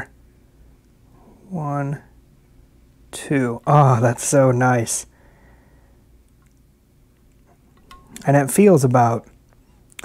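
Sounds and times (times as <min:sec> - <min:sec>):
low background hum: 0:00.0 - 0:10.0
faint small clicks: 0:06.2 - 0:08.3.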